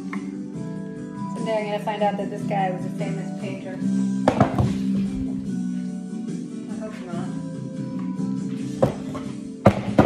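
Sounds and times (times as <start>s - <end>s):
picture frame knocking on table: 4.3s - 4.8s.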